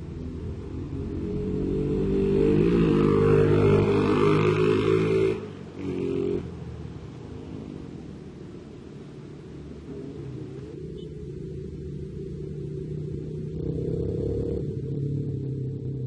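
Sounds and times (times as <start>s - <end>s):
vehicle engine passing by: 0.0s - 16.0s.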